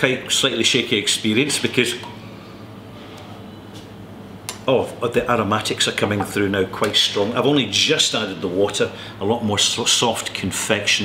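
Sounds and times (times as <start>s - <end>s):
constant low hum: 0.0s - 11.0s.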